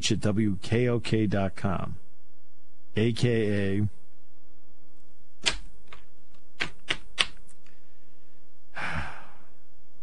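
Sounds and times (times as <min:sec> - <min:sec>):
faint steady hum: 0:00.0 - 0:10.0
short sharp clicks: 0:05.4 - 0:06.0.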